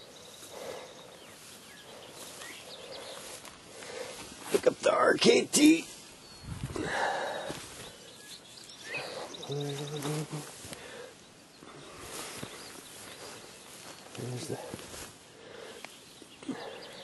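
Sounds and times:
rustling through grass: 0.0 - 17.0.

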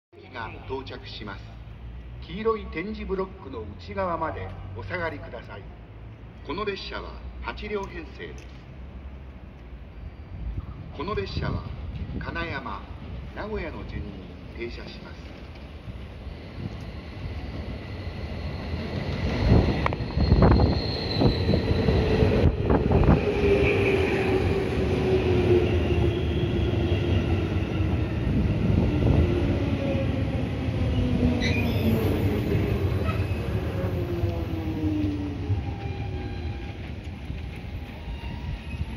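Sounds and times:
electric train arriving: 12.9 - 38.9
train brake whine: 16.4 - 22.0.

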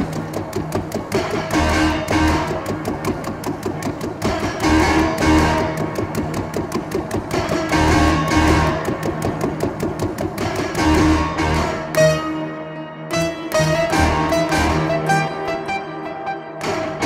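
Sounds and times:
muted plucked piano: 0.0 - 17.0.

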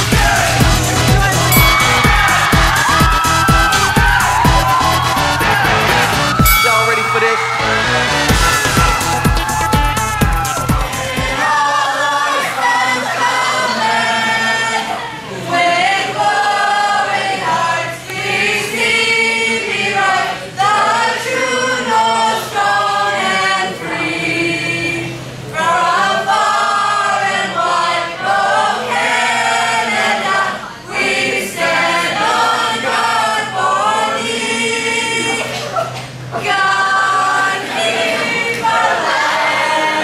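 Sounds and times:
group singing unaccompanied: 0.0 - 9.6, 10.2 - 40.0.

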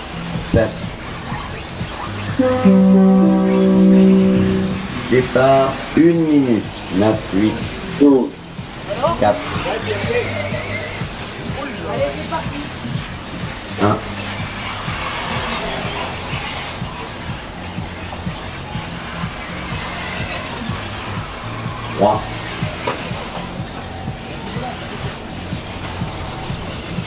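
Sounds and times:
music playing: 0.0 - 27.0.

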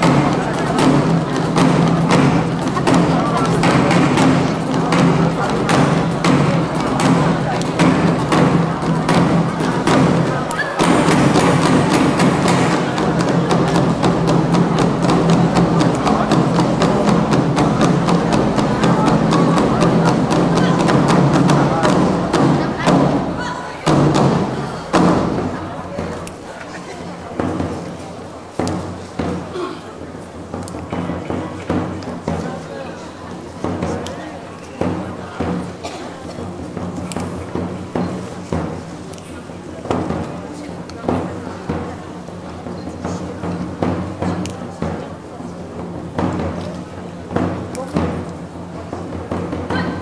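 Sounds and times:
ensemble drumming: 0.0 - 50.0.

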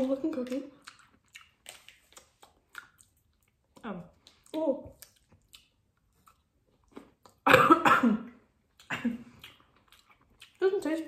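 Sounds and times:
faint chewing clicks: 0.0 - 7.4, 8.7 - 11.0
person coughing: 7.4 - 9.2
throat clearing: 7.4 - 9.2.

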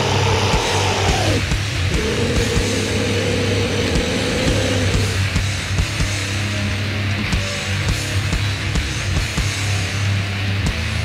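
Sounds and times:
low bass drone: 0.0 - 11.0.

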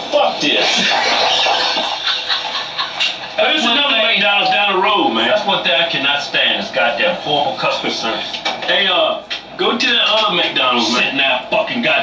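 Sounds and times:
men laughing hard: 0.7 - 3.6.

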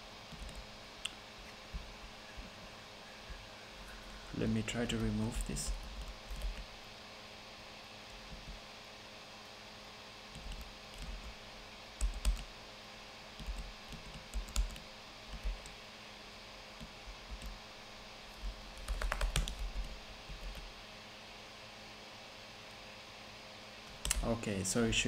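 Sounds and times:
computer keyboard typing: 0.3 - 0.6, 4.8 - 6.7, 10.3 - 11.4, 12.0 - 12.5, 13.4 - 15.8, 18.7 - 20.7.

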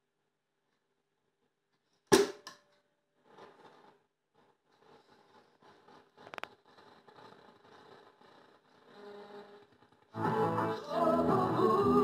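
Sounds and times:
radio static hiss and crackle: 3.3 - 11.0.

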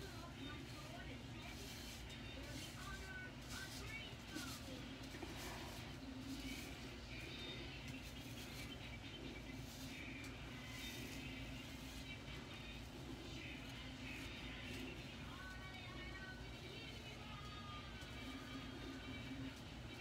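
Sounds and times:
hairbrush swishing through hair: 0.0 - 15.4
low room hum: 0.0 - 20.0.

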